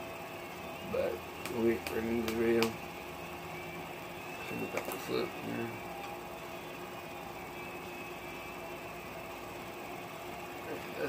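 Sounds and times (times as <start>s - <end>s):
air conditioner humming: 0.0s - 11.0s.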